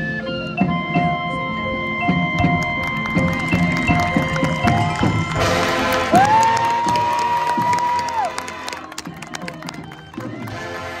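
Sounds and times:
marching band playing: 0.6 - 11.0
crowd cheering: 2.4 - 11.0.

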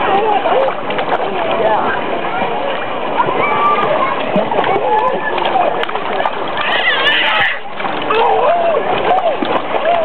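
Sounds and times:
chatter of many voices: 0.0 - 10.0
toddler splashing water: 0.0 - 10.0.

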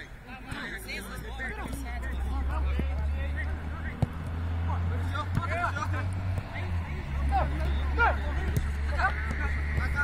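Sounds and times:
players shouting: 0.0 - 10.0
football being kicked: 1.5 - 3.1, 3.8 - 4.4, 5.0 - 6.7, 7.5 - 10.0.

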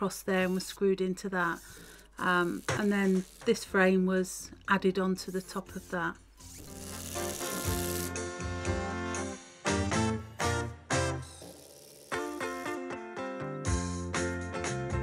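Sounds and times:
instrumental background music: 5.8 - 11.5, 12.1 - 15.0.

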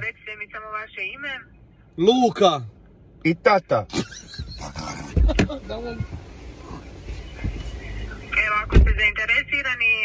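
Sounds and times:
men stifling laughter: 3.9 - 5.4
thump on microphone: 8.7 - 9.0.

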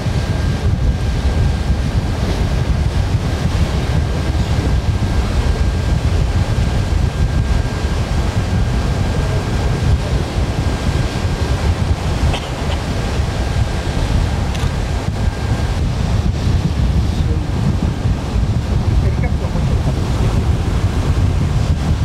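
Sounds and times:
faint high whine: 0.0 - 22.0
sea waves washing: 0.0 - 22.0
wind buffeting microphone: 0.0 - 22.0.

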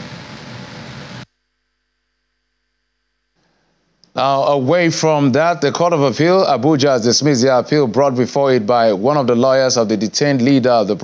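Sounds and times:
faint electrical hum: 0.0 - 11.0
steady hiss and room noise: 0.0 - 11.0.

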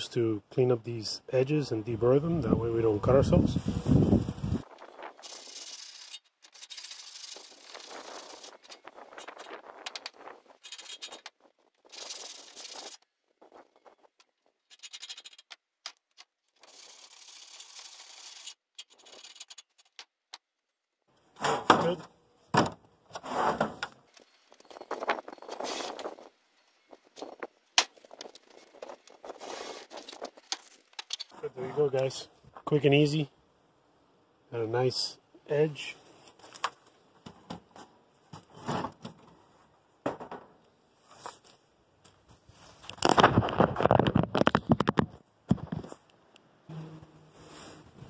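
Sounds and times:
sandpaper rubbing on metal edge: 5.2 - 9.4, 11.8 - 13.0, 16.6 - 19.7.

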